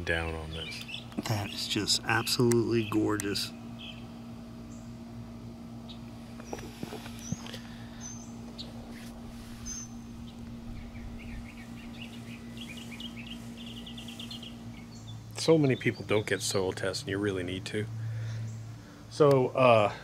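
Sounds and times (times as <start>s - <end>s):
birds chirping: 0.0s - 20.0s
steady low hum: 0.0s - 20.0s.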